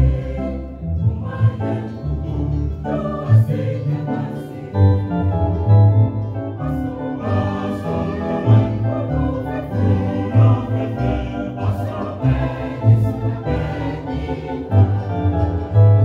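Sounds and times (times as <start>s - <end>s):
choir singing a hymn: 0.0s - 16.0s.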